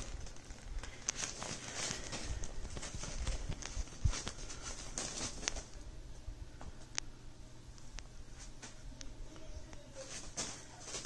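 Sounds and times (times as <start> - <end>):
fabric rustling: 0.0 - 5.8.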